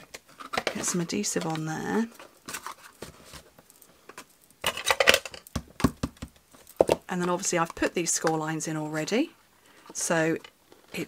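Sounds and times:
cardstock crinkling and tapping: 0.0 - 8.4.

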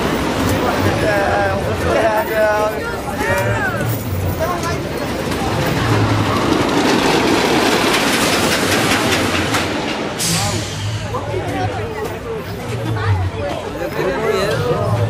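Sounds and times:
voices: 0.0 - 15.0
loud rushing noise: 3.1 - 11.8
sharp hiss of air: 10.2 - 11.0.

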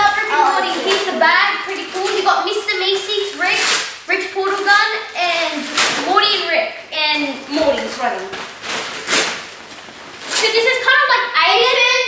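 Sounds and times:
children talking: 0.0 - 8.4, 10.3 - 12.0.

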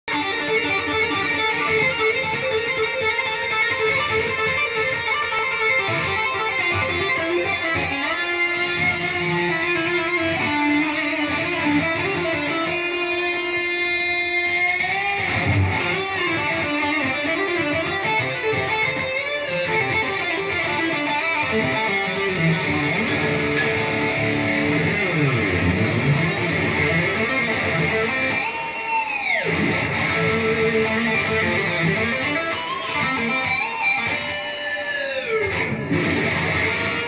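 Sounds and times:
electric guitar shred solo: 0.0 - 37.0.

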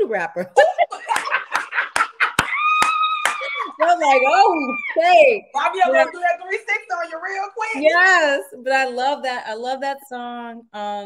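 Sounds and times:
laughter: 0.6 - 2.7
hands clapping quickly: 1.1 - 3.8
high squeal of delight: 2.4 - 5.1.

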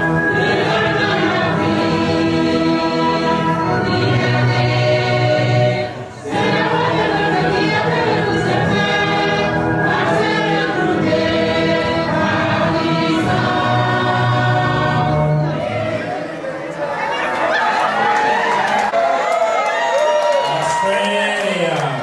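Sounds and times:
group singing long held notes: 0.0 - 19.0.

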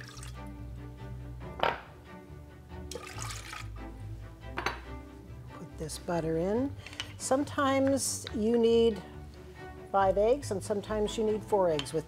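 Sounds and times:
milk pouring into saucepan: 0.0 - 0.5, 2.9 - 3.8
background music: 0.0 - 12.0.

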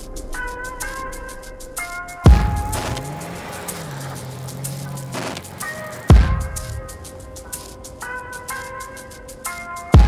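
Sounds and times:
music with steady beat: 0.0 - 10.0
car engine revving: 2.2 - 7.9
tyres on snow: 2.2 - 8.8.

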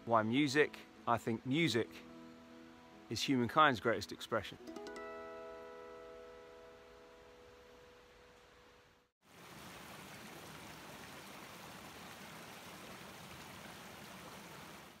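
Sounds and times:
guitar notes ringing: 0.7 - 8.8
stream running over pebbles: 9.2 - 15.0.

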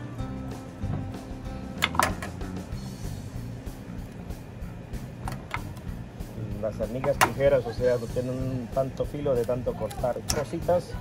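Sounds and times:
background music low notes: 0.0 - 11.0.

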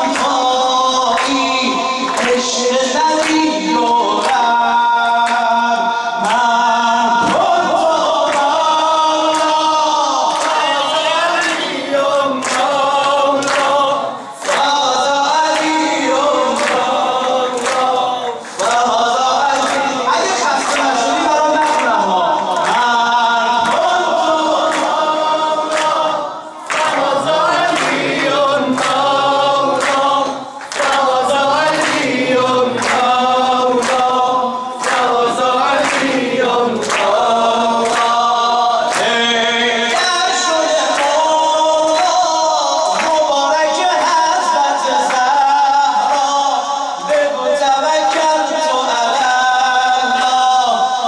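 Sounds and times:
group of voices singing: 0.0 - 51.0.

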